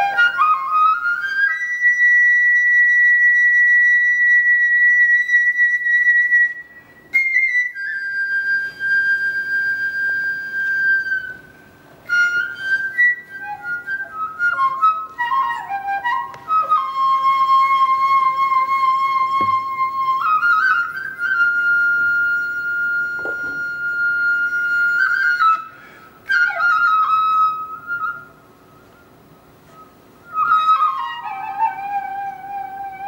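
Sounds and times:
bamboo flute solo: 0.0s - 33.0s.

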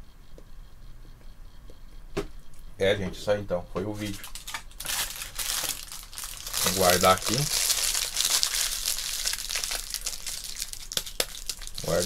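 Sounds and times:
foil wrapper crinkling: 3.9s - 12.0s.

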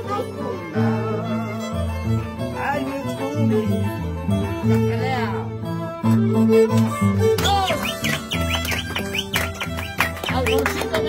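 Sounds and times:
men singing: 0.0s - 2.4s
violin: 0.0s - 11.0s.

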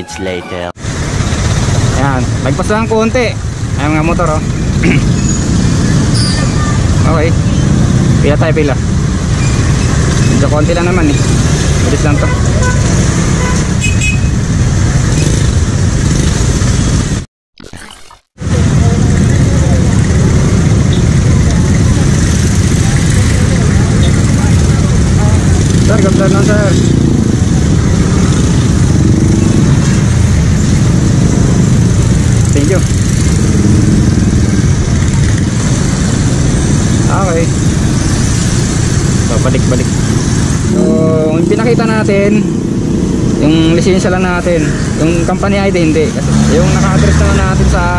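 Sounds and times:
road noise: 0.0s - 17.3s, 18.3s - 47.9s
other motorcycles running: 0.8s - 17.2s, 18.4s - 47.9s.

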